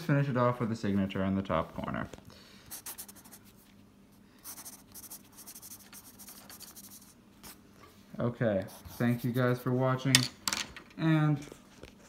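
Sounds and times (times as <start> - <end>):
pencil scratching on paper: 2.7 - 3.6, 4.4 - 7.6, 8.6 - 9.8.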